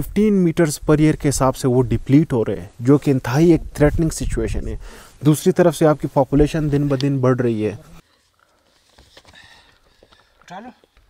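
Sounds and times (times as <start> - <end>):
footsteps on stony ground: 8.1 - 11.0.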